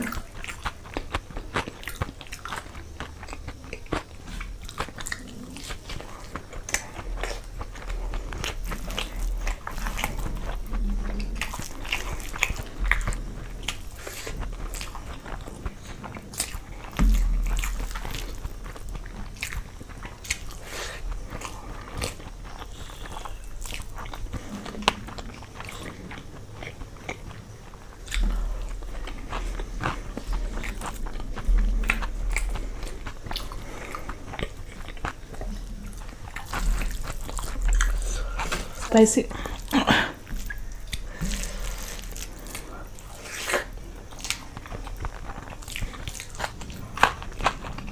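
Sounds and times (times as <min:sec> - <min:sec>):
close chewing and crunching: 0:00.0 - 0:47.9
low thumps: 0:16.7 - 0:19.3.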